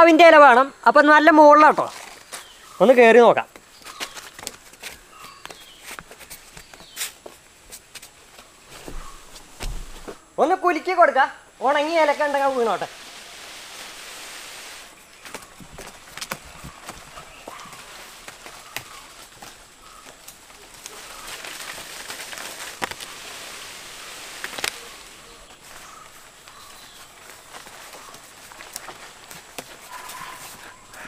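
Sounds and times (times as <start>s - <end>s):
rustling foliage: 0.0s - 31.0s
scuffs and clicks on bark: 15.2s - 23.1s, 25.7s - 31.0s.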